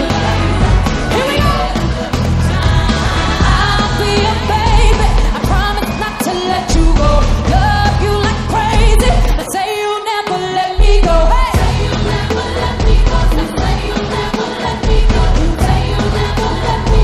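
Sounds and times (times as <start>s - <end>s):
woman singing: 0.0s - 17.0s.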